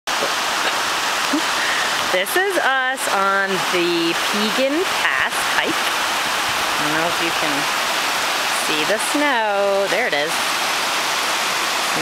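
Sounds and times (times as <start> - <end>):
stream rushing over rocks: 0.1 - 12.0.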